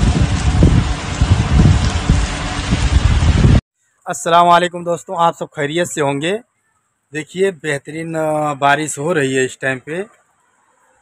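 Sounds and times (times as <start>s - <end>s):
heavy rain falling: 0.0s - 3.6s
wind buffeting microphone: 0.0s - 3.6s.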